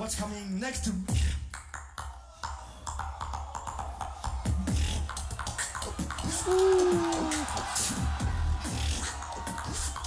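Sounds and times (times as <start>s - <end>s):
beatboxing: 1.0s - 10.0s.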